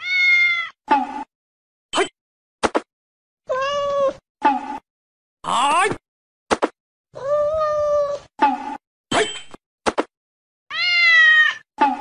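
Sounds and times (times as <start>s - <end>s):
cat meowing: 0.0s - 0.8s, 3.5s - 4.2s, 7.2s - 8.2s, 10.7s - 11.6s.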